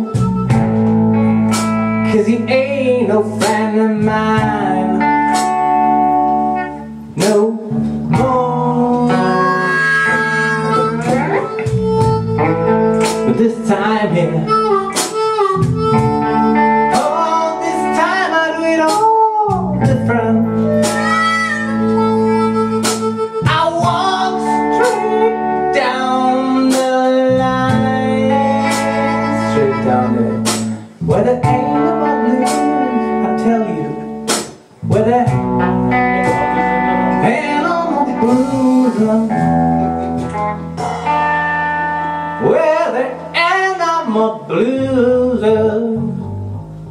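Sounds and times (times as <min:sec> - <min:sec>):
electric guitar lead line bending: 0:00.0 - 0:46.9
live blues band playing: 0:00.0 - 0:46.9.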